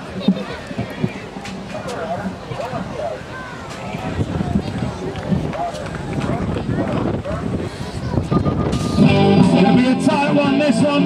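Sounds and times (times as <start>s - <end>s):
electronic start-gate tone: 8.3s - 9.3s.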